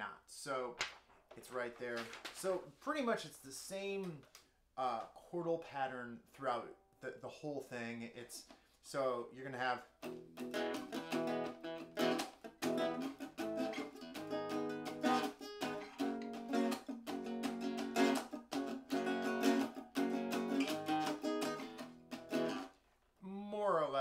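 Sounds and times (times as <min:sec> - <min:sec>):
man speaking: 0:00.0 - 0:00.8, 0:01.4 - 0:10.0, 0:23.2 - 0:24.0
acoustic guitar strumming: 0:10.0 - 0:22.7.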